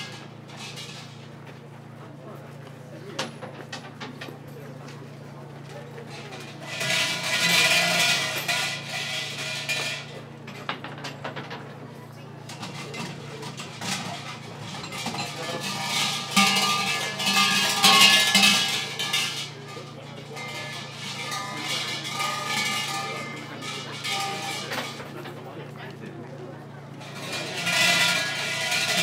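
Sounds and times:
murmur of voices: 1.7 - 29.0
shrine bells jangling: 6.1 - 10.7, 12.5 - 25.8, 26.9 - 29.0.

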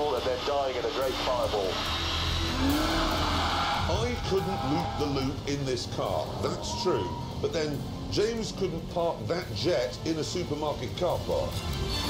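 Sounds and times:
car engine rumble: 1.1 - 11.6.

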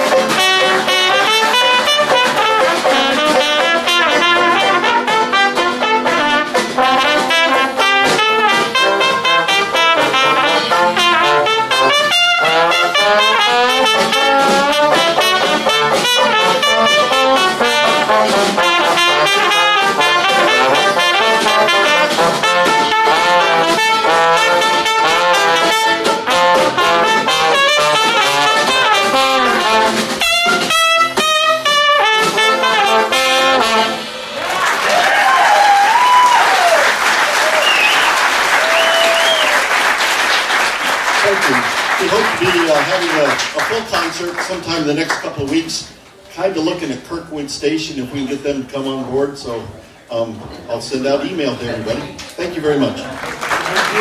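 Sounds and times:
dixieland jazz band playing: 0.0 - 54.0
audience applauding: 34.3 - 45.3, 52.9 - 54.0.

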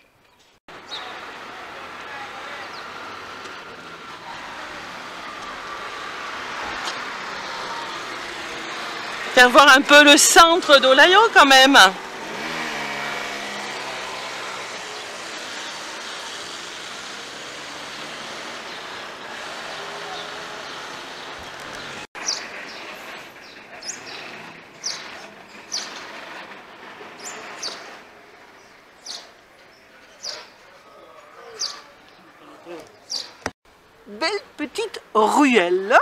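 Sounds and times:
street traffic noise: 0.0 - 36.0
moped engine passing: 0.7 - 33.4.

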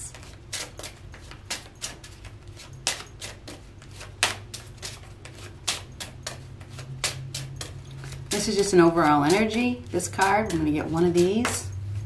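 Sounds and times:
cards being shuffled: 0.0 - 11.3
low steady hum: 0.0 - 12.0.

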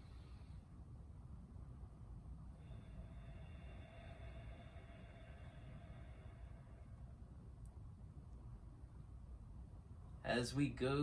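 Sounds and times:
low rumble: 0.0 - 10.4
faint steady high tone: 2.3 - 9.1.

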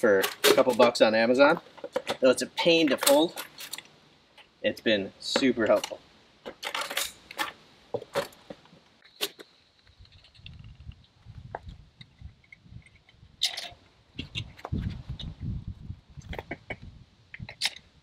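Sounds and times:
metallic clicks and clacks: 2.8 - 3.9.

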